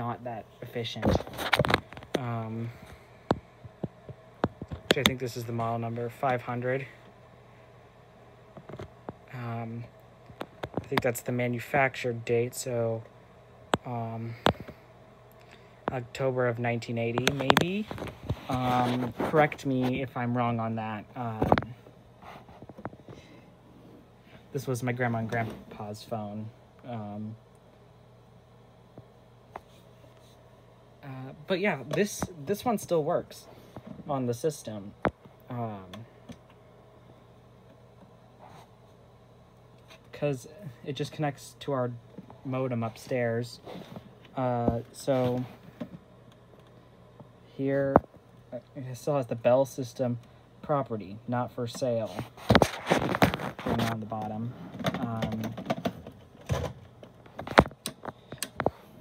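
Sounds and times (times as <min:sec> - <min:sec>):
low steady hum: 0:00.0 - 0:59.0.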